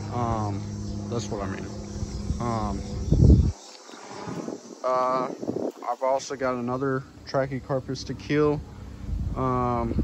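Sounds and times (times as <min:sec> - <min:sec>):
low rumble on microphone: 0:00.0 - 0:05.9, 0:06.8 - 0:10.0
crickets chirping: 0:00.0 - 0:10.0.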